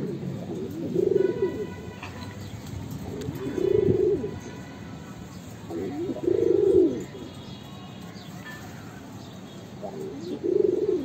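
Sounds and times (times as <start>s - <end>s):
pigeons cooing: 0.0s - 7.4s, 9.8s - 11.0s.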